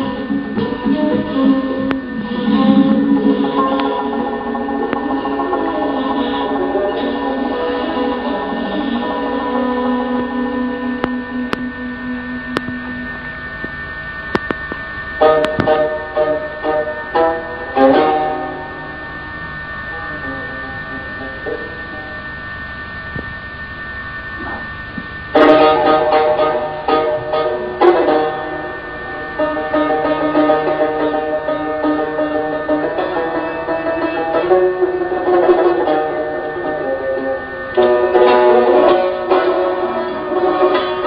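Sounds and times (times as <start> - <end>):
plucked lute music: 37.7 - 41.0.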